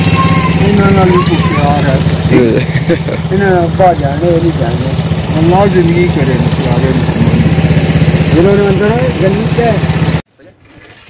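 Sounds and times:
small engine idling: 0:00.0 - 0:10.2
men talking: 0:00.1 - 0:07.6, 0:08.2 - 0:09.9.

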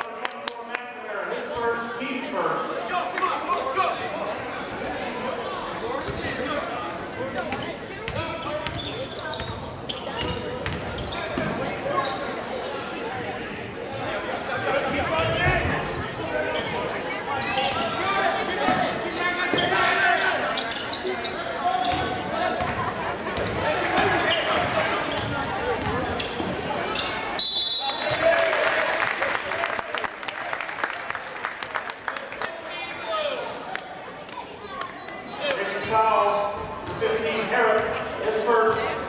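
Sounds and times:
crowd and player voices: 0:00.0 - 0:39.0.

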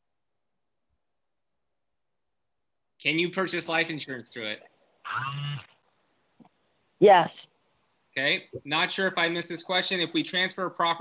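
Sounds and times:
person humming: 0:05.1 - 0:05.6.

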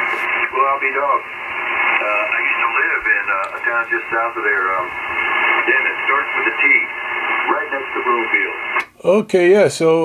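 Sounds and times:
voice over radio speaker: 0:00.0 - 0:08.8
steady radio hiss: 0:00.0 - 0:10.0.

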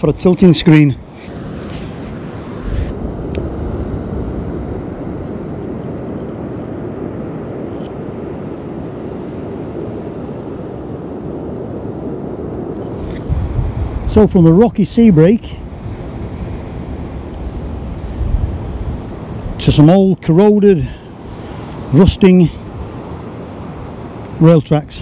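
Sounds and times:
wind on microphone: 0:00.0 - 0:20.0
surf washing: 0:00.0 - 0:25.0.

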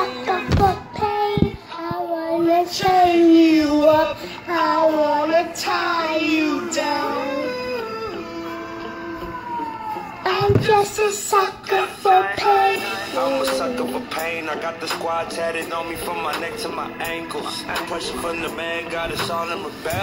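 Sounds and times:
girl singing: 0:00.0 - 0:14.7, 0:15.6 - 0:20.0
pop music: 0:00.0 - 0:20.0.

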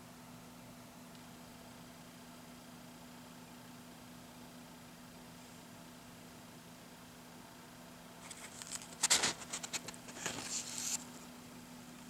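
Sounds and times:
paper pages rustling: 0:08.2 - 0:11.2.

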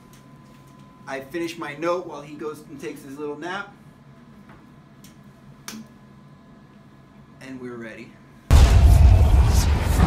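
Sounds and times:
faint room hum: 0:00.0 - 0:08.5.

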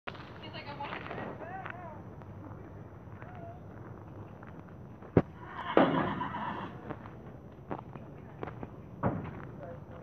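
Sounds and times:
horse neighing: 0:05.4 - 0:06.8.

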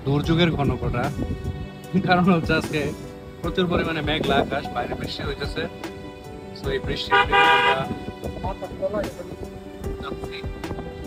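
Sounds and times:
vehicle horn honk: 0:07.1 - 0:08.0.

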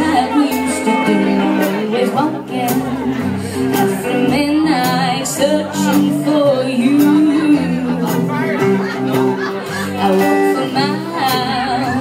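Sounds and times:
woman singing: 0:00.0 - 0:08.3, 0:09.8 - 0:12.0
rockabilly band playing: 0:00.0 - 0:12.0.

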